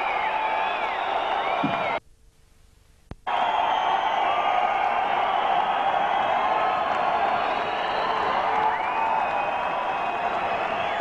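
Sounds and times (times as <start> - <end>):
arena crowd cheering and whistling: 0.0 - 2.0, 3.3 - 11.0.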